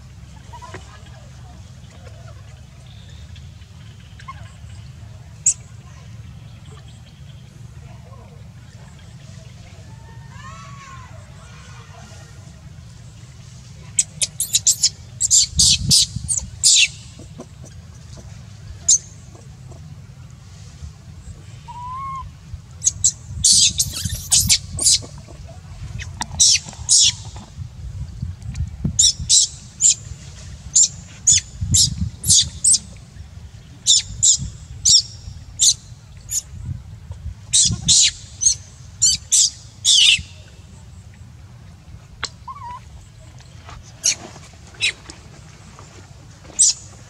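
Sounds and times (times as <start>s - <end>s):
steady low rumble: 11.0s - 39.0s
short high-pitched calls: 23.5s - 24.6s.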